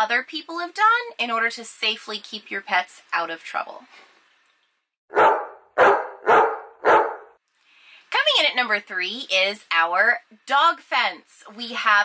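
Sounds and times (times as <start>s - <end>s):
dog barking: 5.1s - 7.4s.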